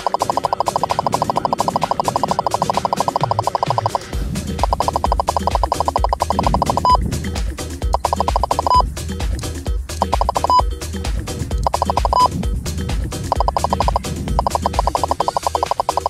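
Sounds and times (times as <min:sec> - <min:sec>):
speed gun electronic pulses and beeps: 0:00.0 - 0:07.0, 0:07.9 - 0:08.8, 0:10.0 - 0:10.7, 0:11.6 - 0:12.5, 0:13.3 - 0:16.0
background music with low beat: 0:00.0 - 0:16.0.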